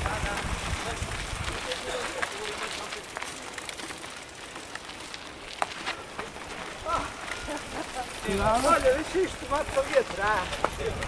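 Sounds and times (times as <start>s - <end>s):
bike rattles and knocks: 0.0s - 11.0s
bike tyres on dirt trail: 0.0s - 11.0s.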